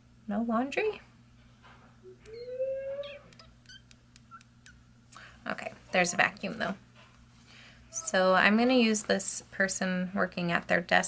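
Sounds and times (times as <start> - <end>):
dog whining: 2.1 - 4.8.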